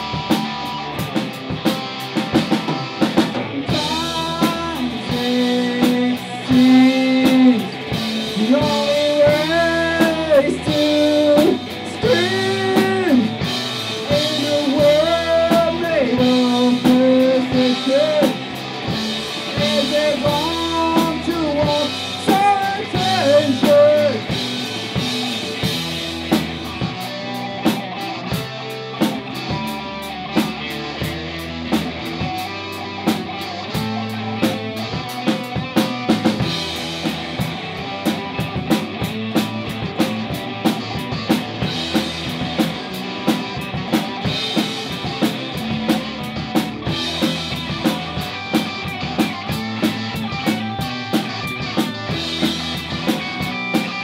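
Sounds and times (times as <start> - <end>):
bending guitar melody: 0.0 - 54.0
rock band jamming: 0.0 - 54.0.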